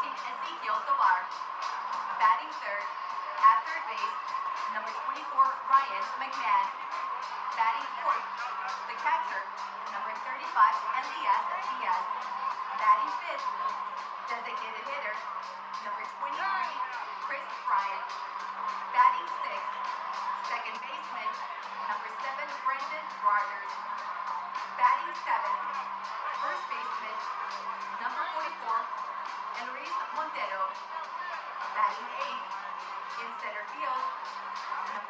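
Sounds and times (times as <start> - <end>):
murmur of large crowd: 0.0 - 35.0
music over loudspeakers with steady beat: 0.0 - 35.0.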